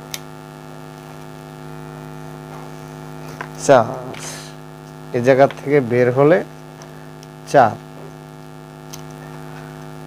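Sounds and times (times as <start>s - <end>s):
electrical mains hum: 0.0s - 10.0s
person speaking: 3.5s - 6.6s, 7.4s - 8.1s.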